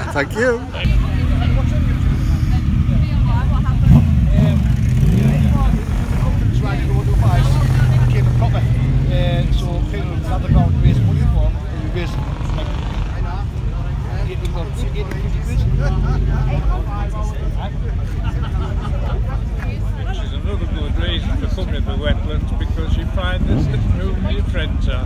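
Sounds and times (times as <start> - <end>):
crowd talking: 0.0 - 25.0
motorcycle engine revving: 0.9 - 14.2, 21.9 - 24.9.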